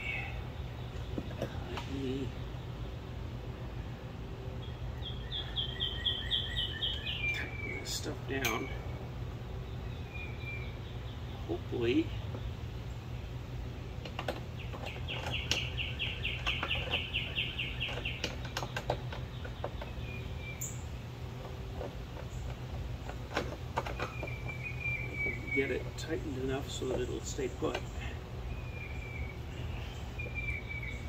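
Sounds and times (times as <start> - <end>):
songbird trilling: 0.0 - 3.3, 4.6 - 13.4, 14.4 - 31.0
steady low hum: 0.0 - 31.0.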